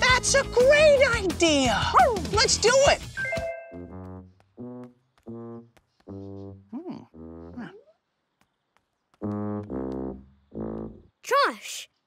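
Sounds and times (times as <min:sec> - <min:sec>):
tuba low notes: 0:03.8 - 0:08.0, 0:09.2 - 0:11.1.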